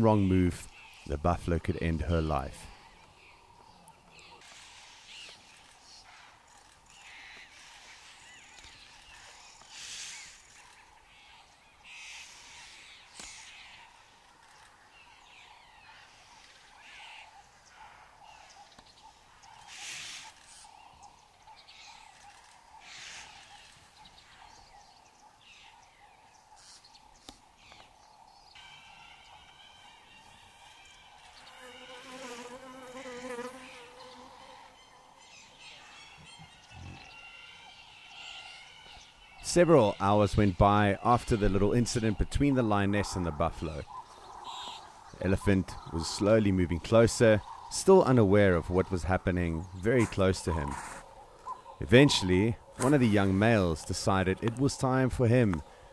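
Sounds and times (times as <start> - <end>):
faint bush ambience: 0.0 - 55.9
steady insect buzz: 27.9 - 35.5.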